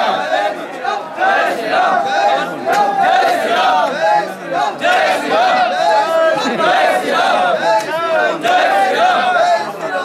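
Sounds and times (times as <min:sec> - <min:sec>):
crowd of men chanting and shouting: 0:00.0 - 0:10.0.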